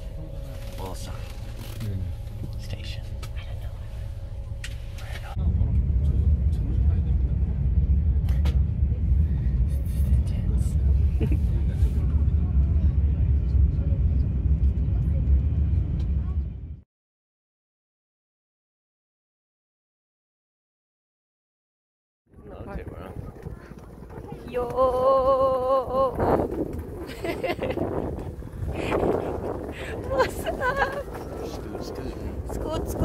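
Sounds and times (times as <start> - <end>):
road hum inside van: 0.0 - 16.8
train rumble inside carriage: 0.0 - 16.8, 22.4 - 33.0.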